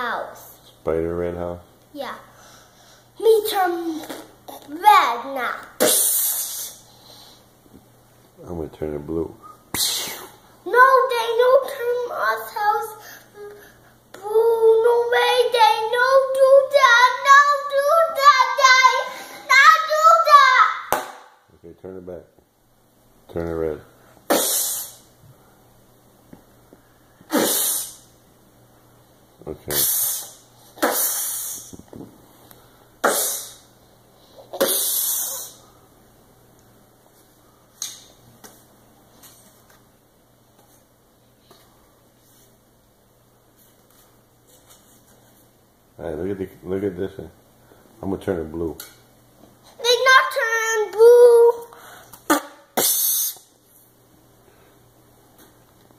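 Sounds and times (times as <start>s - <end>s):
child making hissing mouth sounds: 3.8s - 4.4s, 5.8s - 7.4s, 9.7s - 10.4s, 24.3s - 25.1s, 27.3s - 28.1s, 29.7s - 31.8s, 33.0s - 33.7s, 34.3s - 35.7s, 51.6s - 53.5s.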